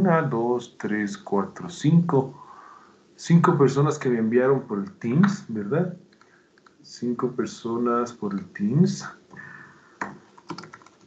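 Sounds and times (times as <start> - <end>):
keyboard typing: 10.0 - 11.0.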